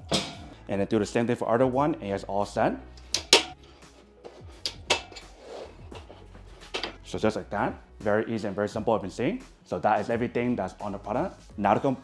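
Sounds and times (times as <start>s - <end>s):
metal clanks: 0.0s - 0.6s, 3.0s - 3.6s, 4.6s - 7.0s
quiet background music: 0.0s - 12.0s.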